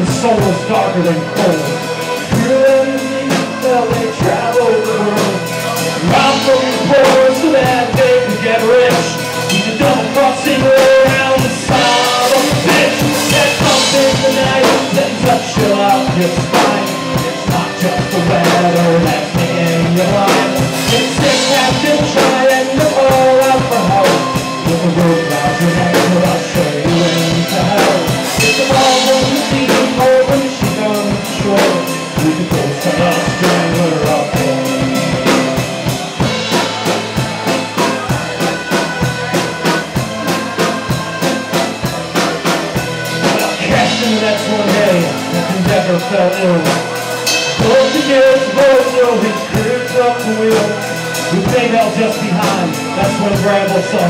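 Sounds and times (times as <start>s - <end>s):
button accordion: 0.0s - 54.0s
drum kit beat: 0.0s - 54.0s.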